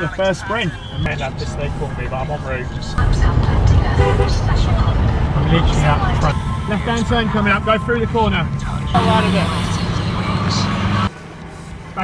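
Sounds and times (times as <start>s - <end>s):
man's voice: 0.0s - 3.0s, 5.3s - 10.8s
car engine drone: 0.0s - 12.0s
road noise: 0.0s - 12.0s.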